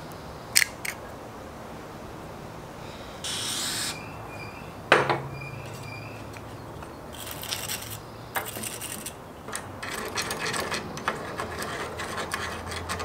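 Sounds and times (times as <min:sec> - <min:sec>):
short scraping hiss: 0:03.2 - 0:04.1
heavy metal clunk with ring: 0:04.9 - 0:05.4.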